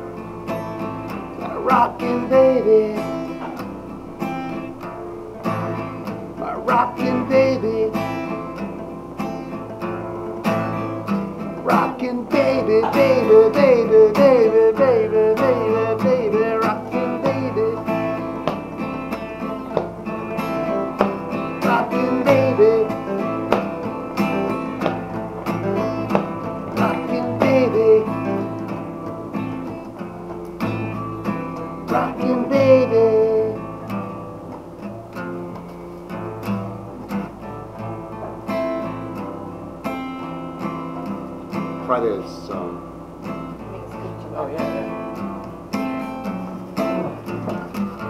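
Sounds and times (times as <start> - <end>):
strummed acoustic guitar: 0.0 - 48.0.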